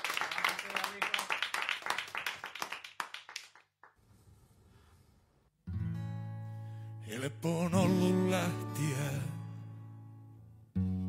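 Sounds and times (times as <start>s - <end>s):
audience clapping: 0.0s - 4.0s.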